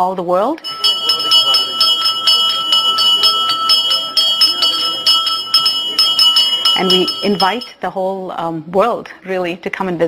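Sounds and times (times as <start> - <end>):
temple bell ringing rapidly: 0.6 - 7.8.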